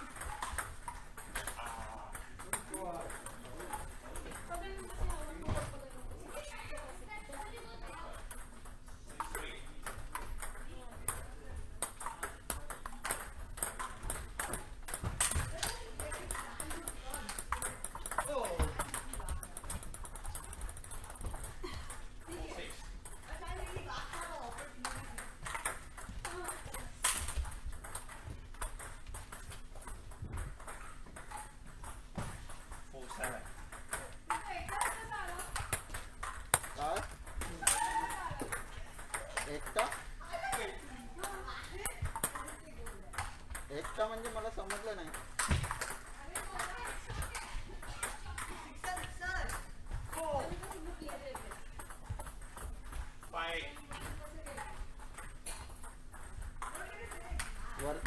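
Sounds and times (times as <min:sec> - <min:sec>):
table tennis ball clicks: 0:07.2 - 0:58.0.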